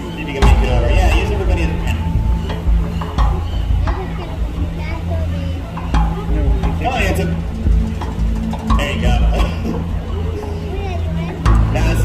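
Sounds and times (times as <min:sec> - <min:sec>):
background music: 0:00.0 - 0:12.0
people talking: 0:00.0 - 0:12.0.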